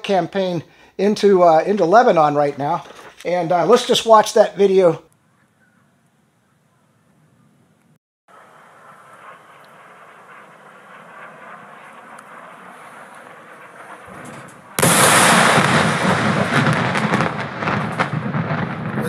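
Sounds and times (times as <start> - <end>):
bomb explosion with rumble: 8.8 - 19.0.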